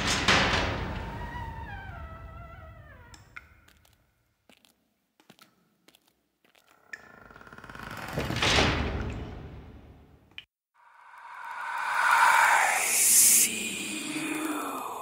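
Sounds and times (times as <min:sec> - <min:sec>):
spooky swelling sound effect: 0:10.8 - 0:15.0.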